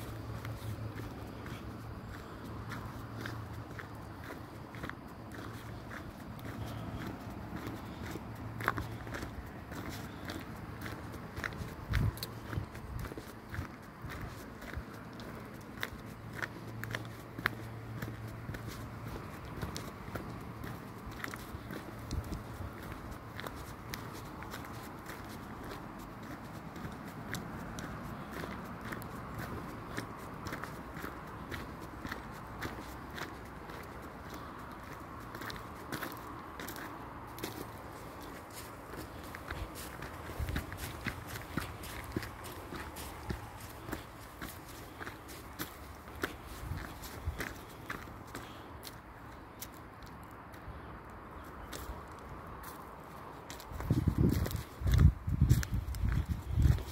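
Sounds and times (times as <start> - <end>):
footsteps crunching on gravel: 0.0 - 56.9
footsteps through dry leaves: 33.7 - 48.6.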